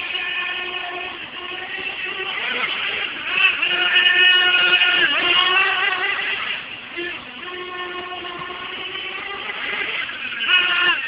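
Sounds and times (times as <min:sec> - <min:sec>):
small engine revving high: 0:00.0 - 0:11.0.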